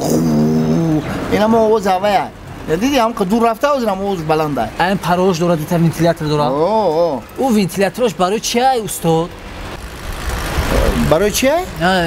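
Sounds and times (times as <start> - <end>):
vehicle passing by: 8.7 - 12.0
man speaking: 10.7 - 12.0.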